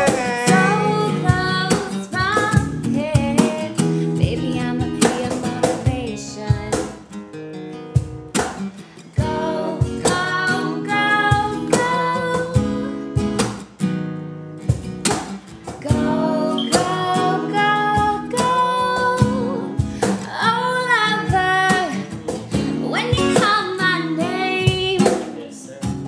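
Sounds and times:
person singing: 0.0s - 6.8s, 15.8s - 22.0s
cajon beat: 0.0s - 14.0s, 14.6s - 26.0s
acoustic guitar strumming: 0.0s - 26.0s.

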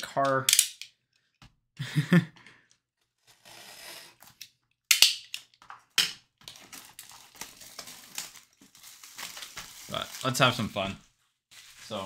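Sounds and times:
plastic wrap ripping: 6.4s - 10.6s
plastic wrap crinkling: 6.4s - 10.8s, 11.5s - 12.0s.

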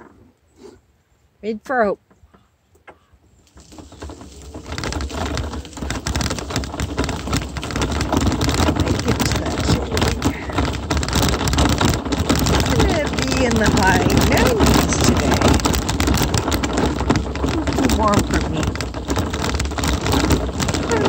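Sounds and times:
wheels crunching on gravel road: 3.0s - 21.0s.

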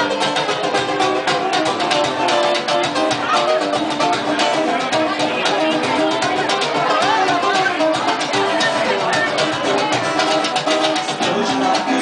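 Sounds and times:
strummed acoustic guitars: 0.0s - 12.0s.

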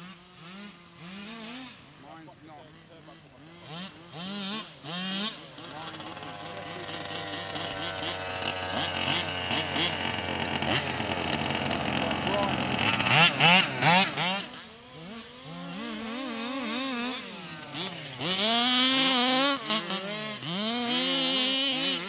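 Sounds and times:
two-stroke engine revving: 0.0s - 22.0s.

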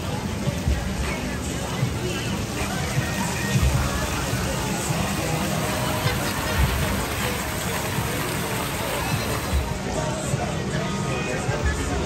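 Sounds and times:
background music: 0.0s - 12.0s
crowd chatter: 0.0s - 12.0s
fountain splashing: 0.0s - 12.0s.

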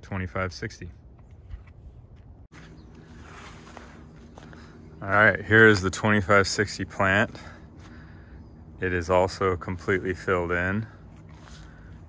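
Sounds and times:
low steady hum: 0.0s - 12.0s
footsteps on soil: 1.4s - 5.8s, 7.2s - 8.2s, 9.6s - 12.0s.

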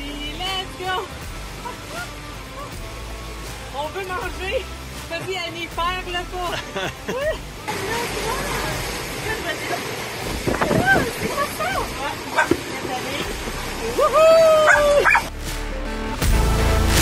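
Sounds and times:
wind and water noise: 0.0s - 15.3s
people shouting and whooping: 13.8s - 15.3s
background music with beat: 14.8s - 17.0s.

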